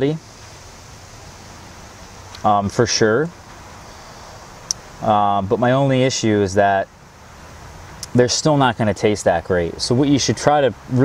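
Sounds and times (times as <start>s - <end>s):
man speaking: 0.0s - 0.2s, 2.4s - 3.4s, 5.0s - 6.9s, 8.0s - 11.0s
background hiss: 0.0s - 11.0s.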